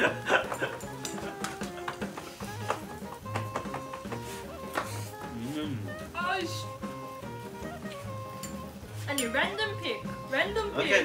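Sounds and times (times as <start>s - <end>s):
music with held melodic notes: 0.0s - 11.0s.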